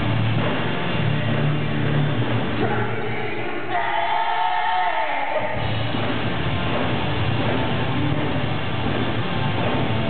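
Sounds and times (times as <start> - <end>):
live rock band: 0.0 - 3.0, 5.6 - 10.0.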